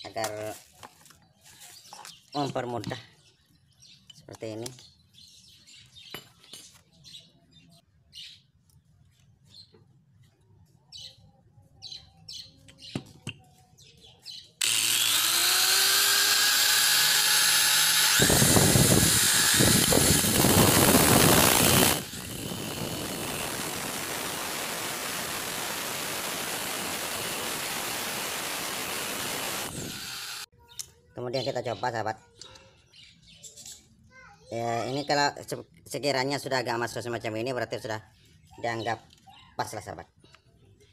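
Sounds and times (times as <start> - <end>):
small birds chirping: 0.1 - 14.6, 29.8 - 36.2, 37.2 - 40.9
nut grinding against abrasive disc: 14.6 - 25.6
angle grinder and drill whining: 14.6 - 30.5.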